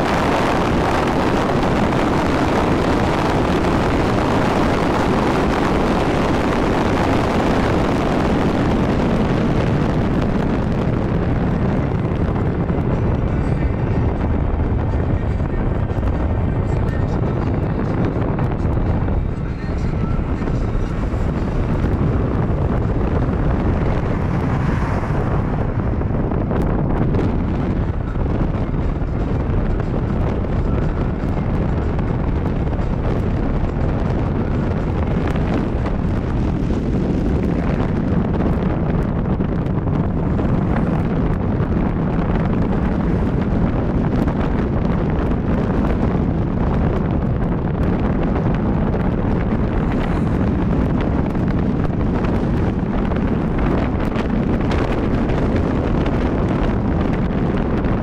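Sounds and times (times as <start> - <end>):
car engine and tyre rumble: 0.0 - 58.0
wind buffeting microphone: 0.0 - 58.0.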